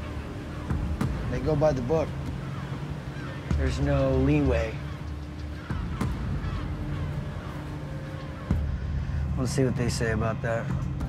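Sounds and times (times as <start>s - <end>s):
boat engine drone: 0.0s - 11.0s.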